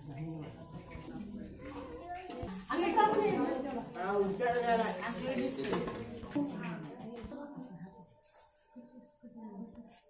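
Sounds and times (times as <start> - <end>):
women talking: 2.2 - 10.0.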